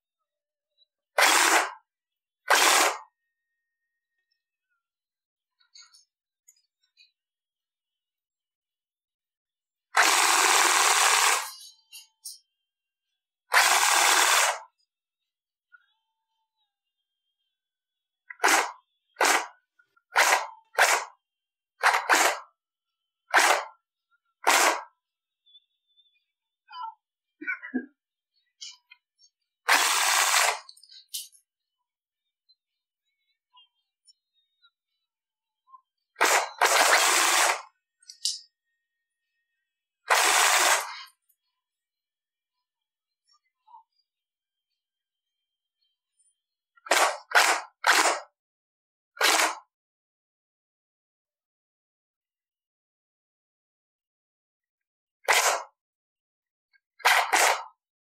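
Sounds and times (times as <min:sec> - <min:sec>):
airsoft gun shots: 0:18.4 - 0:19.5, 0:23.3 - 0:23.7, 0:24.5 - 0:24.9, 0:36.2 - 0:37.6, 0:46.9 - 0:48.3, 0:49.2 - 0:49.6, 0:55.3 - 0:55.7, 0:57.0 - 0:57.7.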